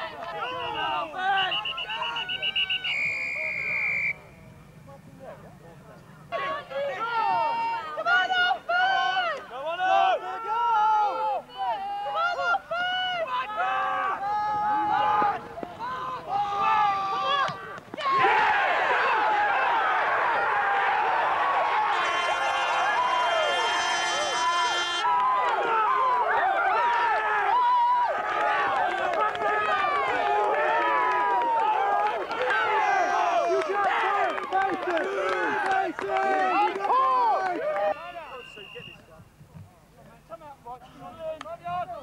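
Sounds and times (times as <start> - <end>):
crowd shouting and cheering: 0.0 - 4.4, 6.3 - 38.9
steady buzzing tone: 21.9 - 25.1.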